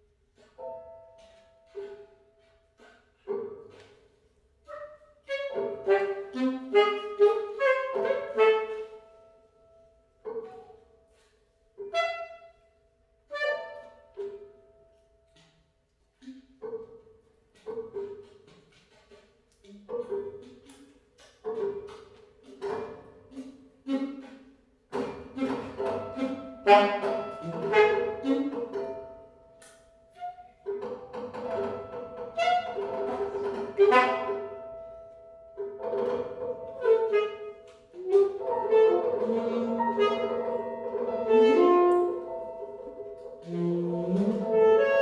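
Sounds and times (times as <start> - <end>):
piano notes: 0.3 - 15.5, 21.4 - 45.0
saxophone notes: 4.6 - 9.5, 10.4 - 14.2, 23.3 - 30.8, 31.5 - 35.3, 36.6 - 45.0.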